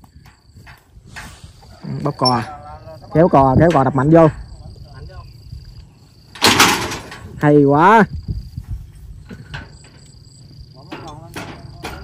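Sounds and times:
high insect drone: 0:00.0 - 0:12.0.

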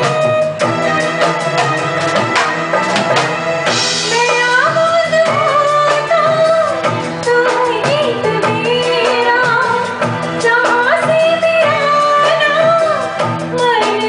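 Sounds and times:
band accompaniment: 0:00.0 - 0:14.0
drum strikes: 0:00.0 - 0:14.0
woman singing into a microphone: 0:03.9 - 0:14.0.

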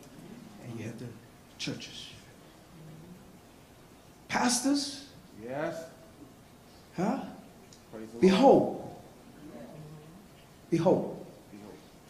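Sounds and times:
faint voice hum: 0:02.4 - 0:03.3, 0:09.3 - 0:10.3.

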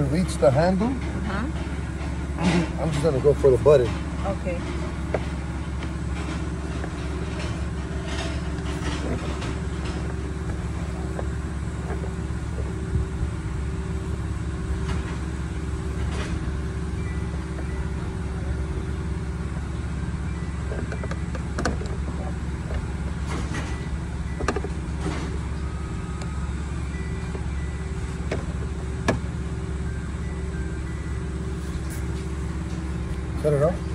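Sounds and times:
vehicle engine idling: 0:00.0 - 0:33.9.

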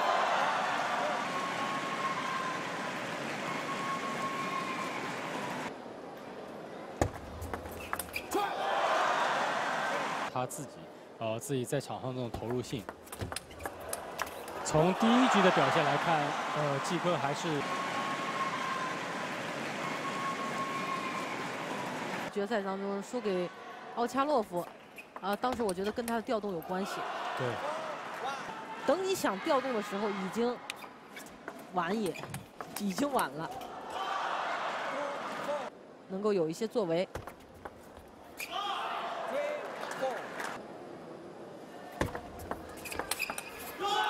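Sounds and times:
arena crowd noise: 0:00.0 - 0:11.2, 0:13.5 - 0:25.4, 0:26.1 - 0:36.0, 0:38.4 - 0:44.0.

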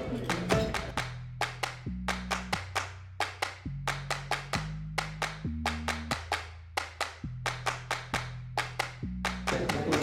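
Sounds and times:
clap-like percussion beat: 0:00.0 - 0:10.0.

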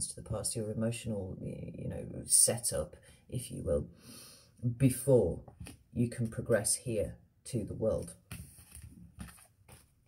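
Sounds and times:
cards being handled: 0:08.0 - 0:10.0.

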